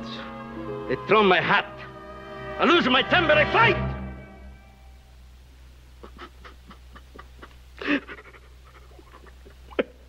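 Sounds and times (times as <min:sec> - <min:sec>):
man sobbing: 0:06.0 - 0:09.9.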